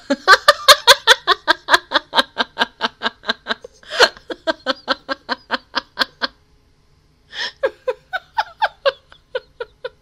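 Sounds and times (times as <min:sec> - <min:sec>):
woman laughing hard: 0:00.0 - 0:06.4, 0:07.4 - 0:10.0
breathy gasp: 0:07.3 - 0:07.6.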